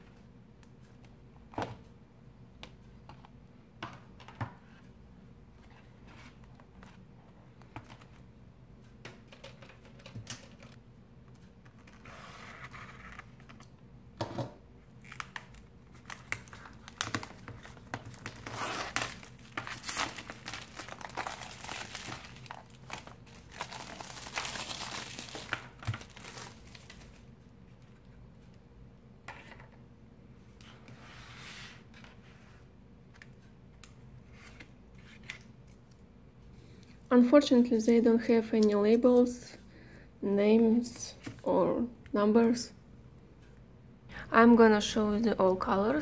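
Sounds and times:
plastic shrink-wrap crinkling: 0:15.0 - 0:27.2.

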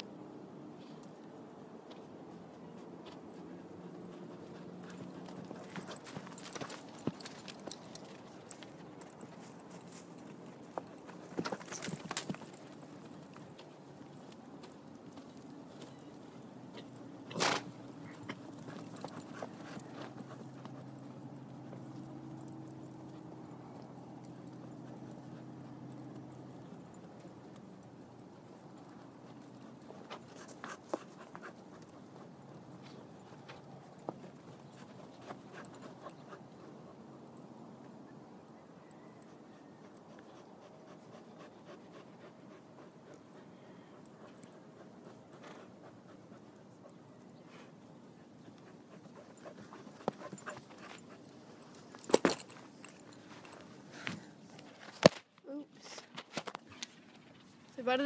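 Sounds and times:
horse hooves clopping: 0:00.8 - 0:38.0, 0:38.8 - 0:55.2.

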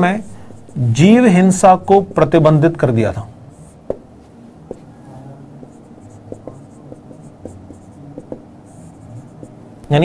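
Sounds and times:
marker writing on whiteboard: 0:00.0 - 0:01.3, 0:03.5 - 0:10.0.

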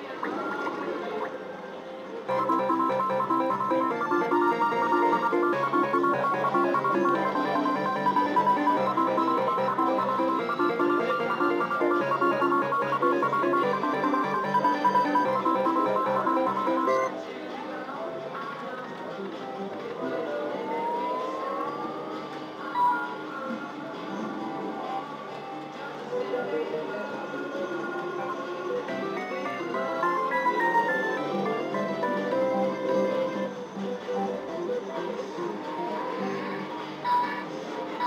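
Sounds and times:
slot machine win music: 0:02.3 - 0:17.1, 0:29.4 - 0:33.5.

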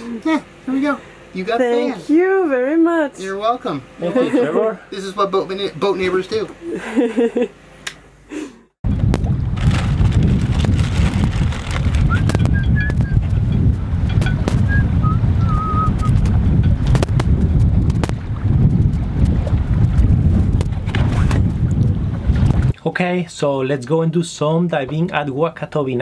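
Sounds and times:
wind buffeting microphone: 0:08.8 - 0:22.8.

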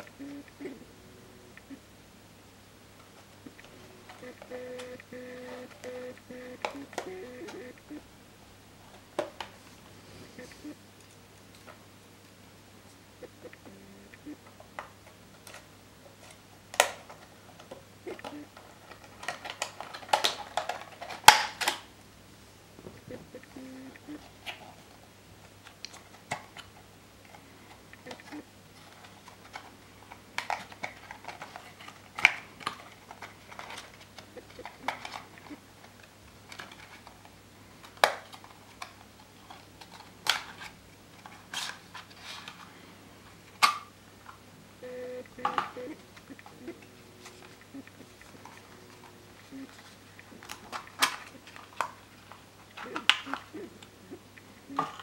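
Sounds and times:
cardboard and plastic packaging handled: 0:28.7 - 0:43.7.

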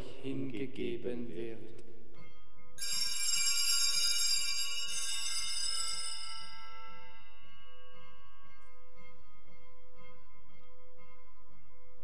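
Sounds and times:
small bells jingling: 0:02.8 - 0:09.1.

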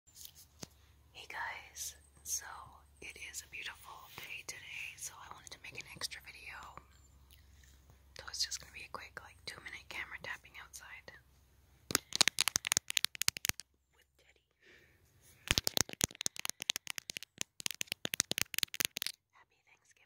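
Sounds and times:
person whispering: 0:01.2 - 0:06.9, 0:08.2 - 0:11.2, 0:14.0 - 0:14.5, 0:19.0 - 0:20.0
small sharp clicks: 0:11.9 - 0:13.6, 0:15.5 - 0:19.2.

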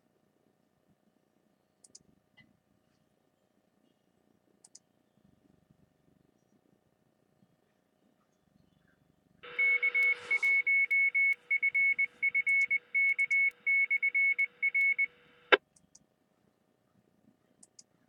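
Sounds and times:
squelch click: 0:01.8 - 0:02.1, 0:04.6 - 0:04.9, 0:09.5 - 0:16.1, 0:17.6 - 0:17.9
morse code beeps: 0:09.4 - 0:15.6
radio hiss: 0:09.4 - 0:15.6.

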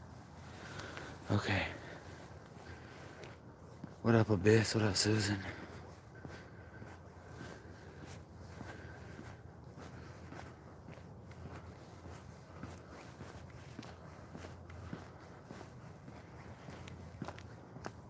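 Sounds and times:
footsteps on asphalt: 0:00.0 - 0:18.0.

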